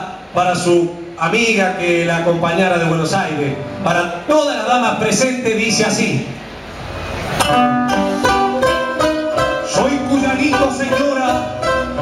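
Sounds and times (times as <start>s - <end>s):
acoustic guitars strumming and picking: 3.4s - 6.0s, 6.7s - 12.0s.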